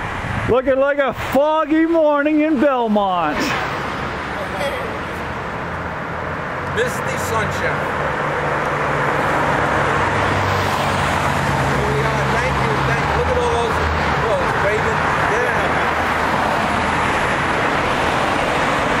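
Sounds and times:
cars passing on road: 0.0s - 19.0s.

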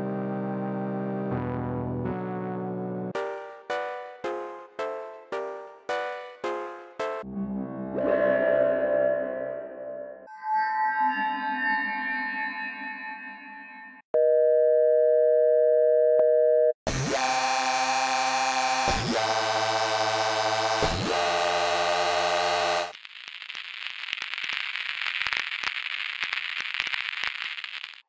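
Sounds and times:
buzzing synth tone: 16.9s - 23.0s
crackling hissing noise: 22.2s - 28.0s.

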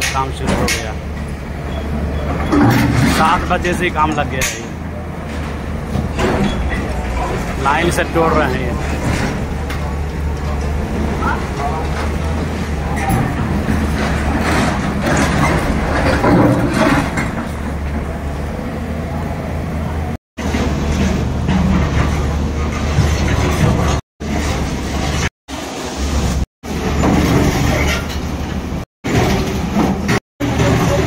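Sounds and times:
heavy machinery engine running: 0.0s - 31.0s.

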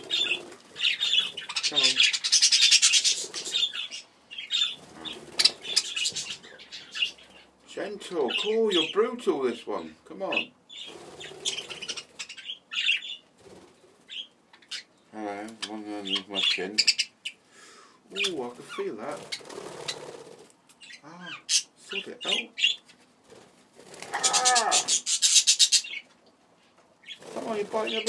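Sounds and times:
budgerigars chirping: 0.0s - 9.1s, 9.8s - 13.3s, 14.1s - 15.0s, 15.6s - 17.4s, 18.1s - 22.9s, 24.2s - 26.1s, 27.0s - 28.0s.

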